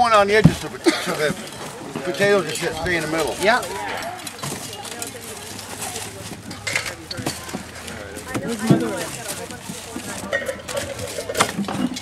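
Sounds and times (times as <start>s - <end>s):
low background talk: 0.0s - 12.0s
potatoes knocking and tumbling: 0.0s - 12.0s.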